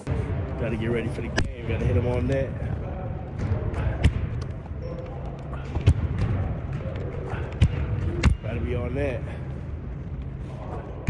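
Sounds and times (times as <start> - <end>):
basketballs bouncing on gym floor: 3.3 - 8.8.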